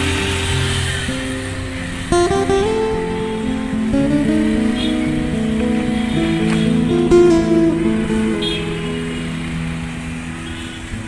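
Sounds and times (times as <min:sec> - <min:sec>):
background guitar music: 0:00.0 - 0:11.0
road noise: 0:00.0 - 0:11.0.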